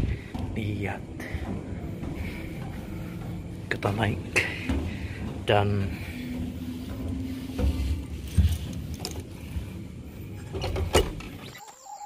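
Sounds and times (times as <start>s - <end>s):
footsteps going up stairs: 0.0s - 11.2s.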